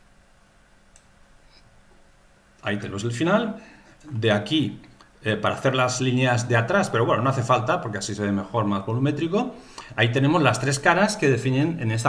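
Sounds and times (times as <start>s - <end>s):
small tick: 0.9s - 1.1s
computer mouse click: 0.9s - 1.2s.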